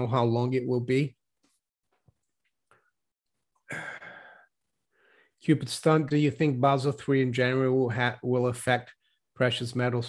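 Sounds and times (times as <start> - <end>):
man exhaling: 3.7 - 5.3.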